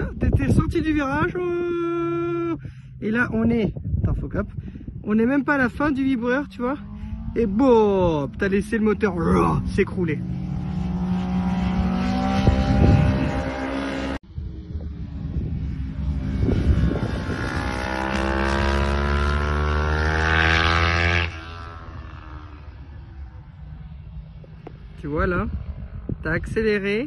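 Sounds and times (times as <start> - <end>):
racing motorcycle engine: 5.2 - 27.0.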